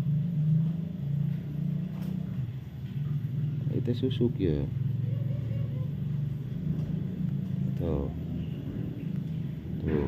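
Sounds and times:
low-pitched hum: 0.0s - 10.0s.

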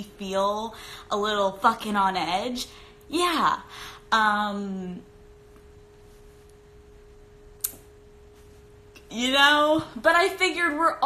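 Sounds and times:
steady single-pitch hum: 0.0s - 11.0s
sharp click: 7.6s - 7.9s.

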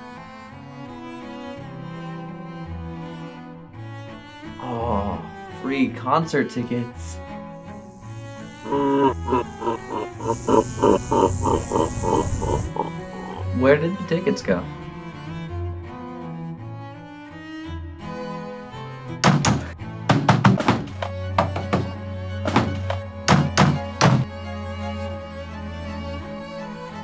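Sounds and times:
bowed strings music: 0.0s - 4.6s, 13.0s - 19.2s
static hiss: 7.6s - 13.6s
distorted cartoonish evil laugh: 7.8s - 13.9s.

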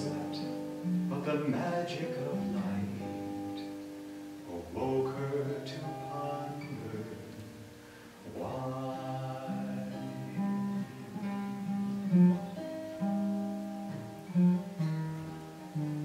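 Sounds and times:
slow acoustic guitar music: 0.0s - 16.0s.

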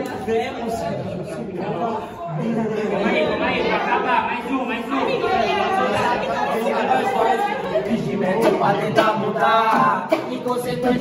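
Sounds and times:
crowd chatter in echoing room: 0.0s - 11.0s.

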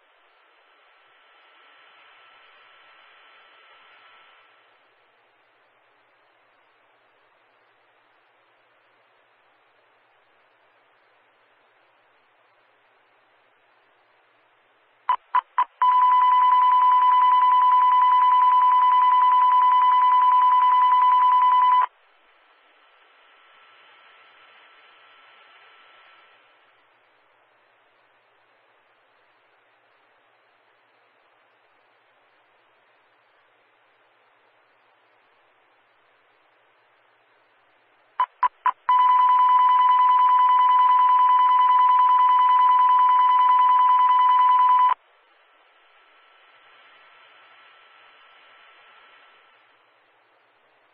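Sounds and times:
short beeps: 15.1s - 21.9s, 38.2s - 45.0s.

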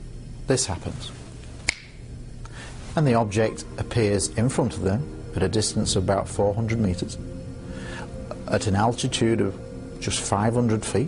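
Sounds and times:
low hum: 0.0s - 11.0s
finger snap: 1.6s - 2.6s.

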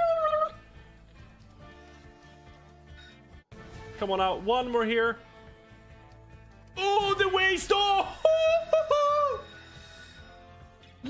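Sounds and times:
slot game background music: 0.4s - 11.0s.

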